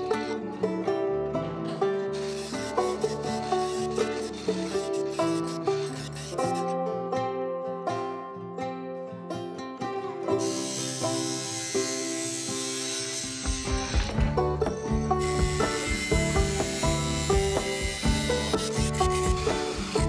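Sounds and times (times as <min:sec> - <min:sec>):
music with plucked strings and beat: 0:00.0 - 0:20.0
angle grinder cutting metal tube: 0:01.8 - 0:06.8, 0:10.3 - 0:20.0.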